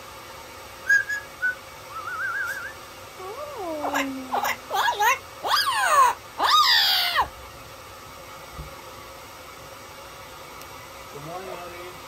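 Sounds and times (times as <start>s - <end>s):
parrot calling loudly: 3.4s - 7.3s.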